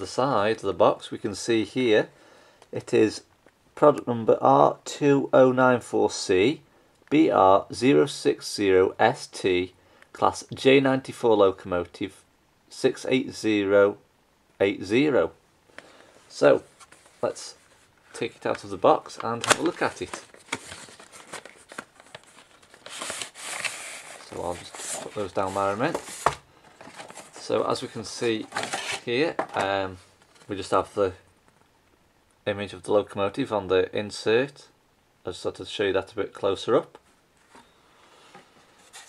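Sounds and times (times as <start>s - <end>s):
cardboard and paper rustling: 16.6s - 30.7s, 38.3s - 39.0s.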